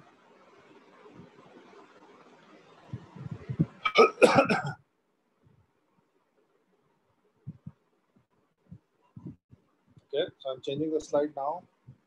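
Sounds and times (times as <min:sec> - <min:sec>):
person coughing: 0:03.8 - 0:04.8.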